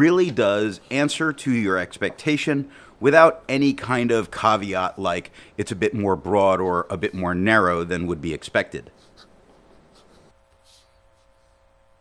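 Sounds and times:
fountain pen scratching on paper: 9.0 - 11.4.

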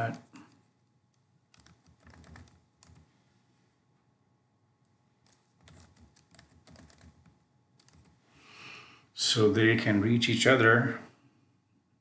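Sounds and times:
computer keyboard typing: 1.5 - 3.0, 5.2 - 8.2.

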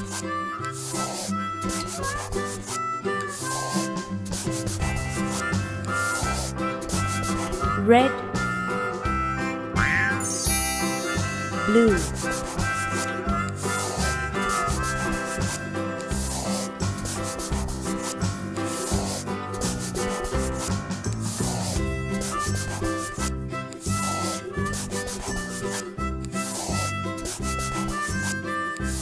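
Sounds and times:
marker scribbling on paper: 0.0 - 7.8, 11.5 - 29.0
instrumental background music: 0.0 - 29.0.

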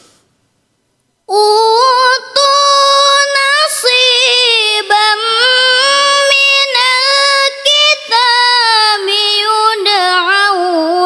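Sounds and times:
girl reciting melodically: 1.3 - 11.0.

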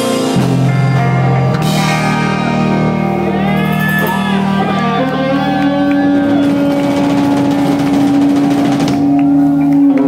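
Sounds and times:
distorted electric guitar note: 0.0 - 10.0
live rock band playing: 0.0 - 10.0.

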